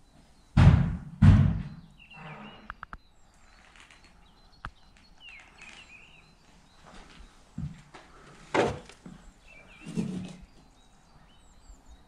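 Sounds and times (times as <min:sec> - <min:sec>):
loud thud: 0:00.6 - 0:01.8
heavy footsteps on floor: 0:06.9 - 0:07.9.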